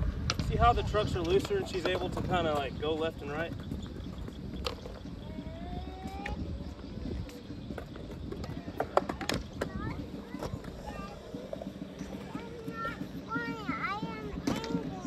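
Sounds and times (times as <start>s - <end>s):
skateboard wheels rolling on concrete: 0.0s - 15.0s.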